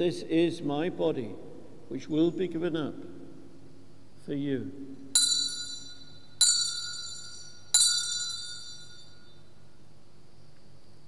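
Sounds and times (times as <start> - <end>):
altar bells ringing: 5.2 - 9.6.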